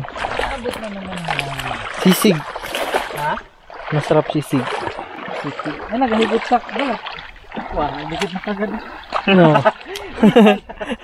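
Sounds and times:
voices talking and exclaiming: 0.0s - 10.5s.

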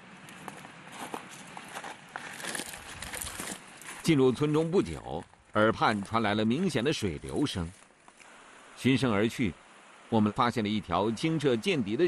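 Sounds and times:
footsteps on dirt path: 0.0s - 8.3s
steady outdoor hiss: 0.0s - 12.0s.

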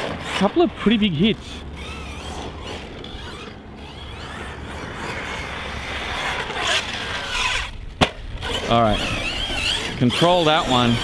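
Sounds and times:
electric motor whine: 0.0s - 11.0s.

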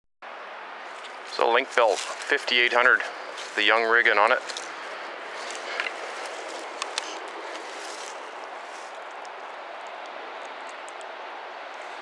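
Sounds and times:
steady hiss-like rush: 0.4s - 12.0s.

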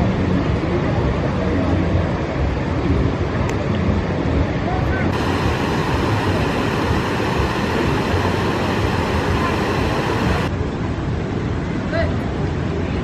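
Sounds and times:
low rumble: 3.8s - 10.9s.

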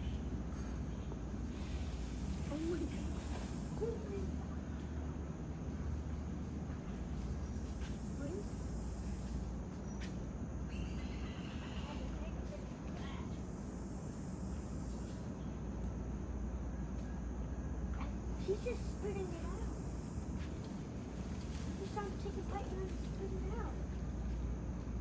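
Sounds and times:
high insect drone: 0.0s - 25.0s
faint voices of people: 11.0s - 13.3s.

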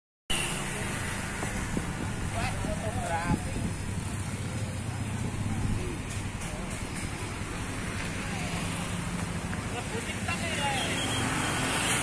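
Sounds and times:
passing traffic hum: 0.3s - 12.0s.

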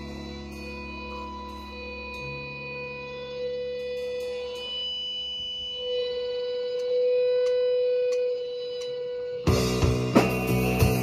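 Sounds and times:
electric guitar ringing: 0.0s - 11.0s
keyboard notes: 0.0s - 11.0s.

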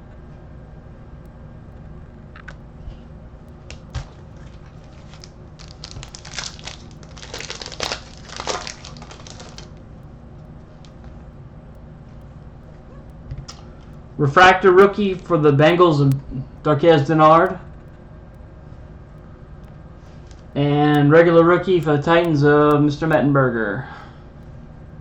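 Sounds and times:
wrapper crinkling: 3.6s - 9.8s.

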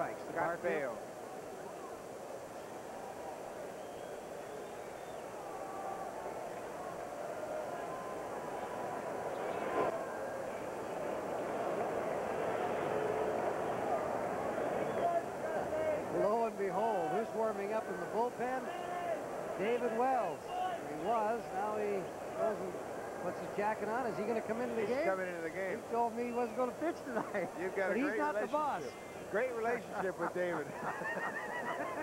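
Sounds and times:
crowd murmur: 0.9s - 25.2s
man talking: 15.0s - 30.8s.

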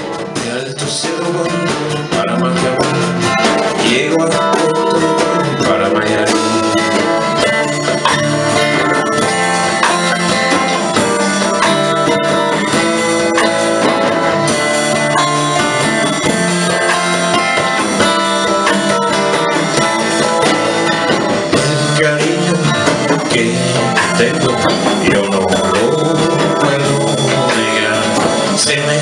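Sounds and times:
acoustic guitars strummed: 0.0s - 29.0s
bass: 0.0s - 29.0s
drum kit: 0.0s - 29.0s.

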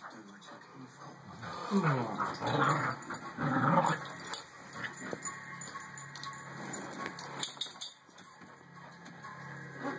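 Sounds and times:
dog collar tags jingling: 1.7s - 9.0s.

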